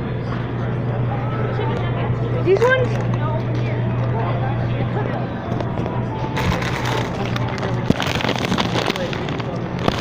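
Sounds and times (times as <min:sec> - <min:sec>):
plastic packaging crackling: 0:06.4 - 0:10.0.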